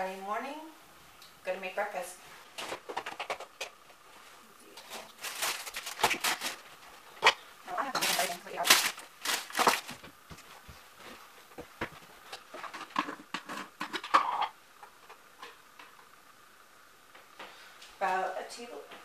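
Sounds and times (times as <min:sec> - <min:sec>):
clicks and knocks of objects set down: 0:02.6 - 0:03.9
plastic bag crinkling: 0:04.9 - 0:07.1, 0:07.9 - 0:10.2
plastic jar handled: 0:07.2 - 0:10.4.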